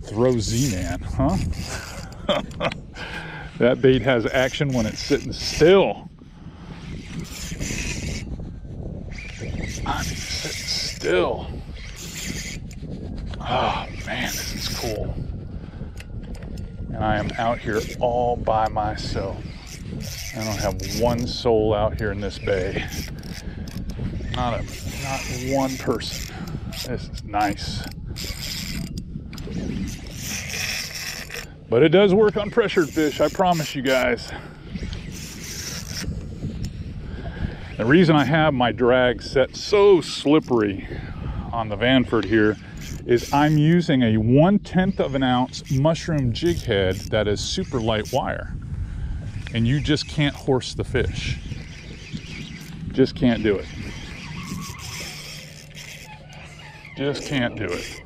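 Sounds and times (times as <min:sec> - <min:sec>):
wind rumbling on microphone: 0:00.0 - 0:58.0
fishing reel cranking hiss: 0:00.4 - 0:02.3, 0:06.9 - 0:08.3, 0:09.1 - 0:11.0, 0:11.7 - 0:12.8, 0:13.4 - 0:15.0, 0:17.2 - 0:38.2, 0:42.2 - 0:43.9, 0:45.2 - 0:48.2, 0:49.0 - 0:58.0.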